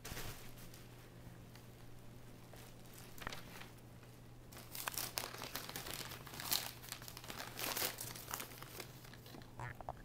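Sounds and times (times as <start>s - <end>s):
cat tunnel crinkling and rustling: 4.5s - 9.4s.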